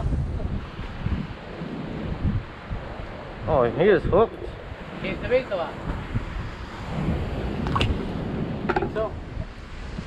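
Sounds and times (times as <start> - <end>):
ocean surf hiss: 0.0 - 10.0
wind buffeting microphone: 0.0 - 10.0.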